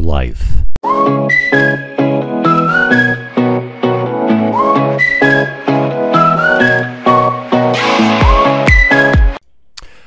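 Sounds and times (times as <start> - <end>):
whistled melody: 0.8 - 9.4
instrumental chords and bass: 0.9 - 9.4.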